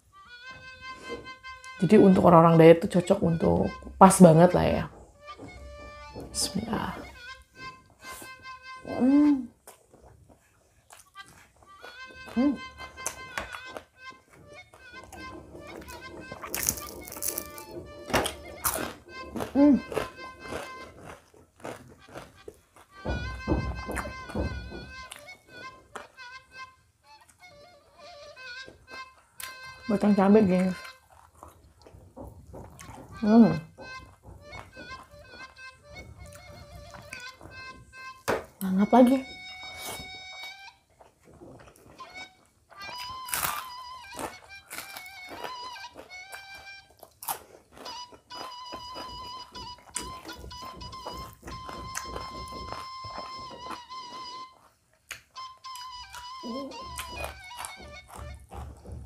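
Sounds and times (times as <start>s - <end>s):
soft background music: 0.2s - 9.5s, 23.0s - 31.0s, 33.1s - 40.8s
person chewing food: 5.0s - 59.0s
person humming: 8.8s - 9.6s, 12.2s - 12.8s, 19.2s - 20.8s, 56.3s - 57.3s
person humming mm: 8.8s - 9.6s, 12.3s - 12.7s, 56.4s - 57.0s
fingers clicking on a plate: 10.9s - 26.4s, 27.2s - 59.0s.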